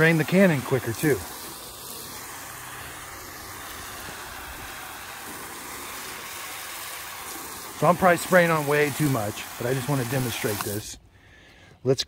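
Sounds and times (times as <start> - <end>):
foam cannon spraying water: 0.0 - 11.0.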